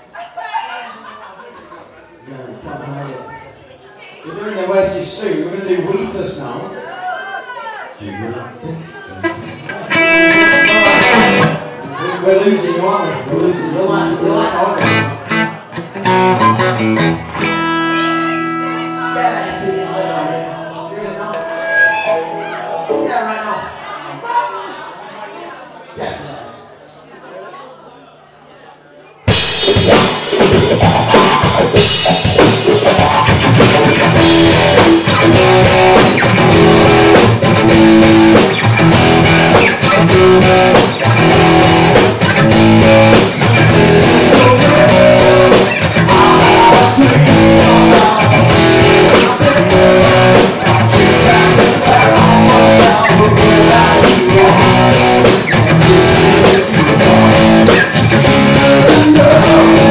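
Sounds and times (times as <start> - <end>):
live rock band: 9.2 - 11.9, 14.1 - 23.1, 29.3 - 59.9
drum beat: 29.3 - 59.9.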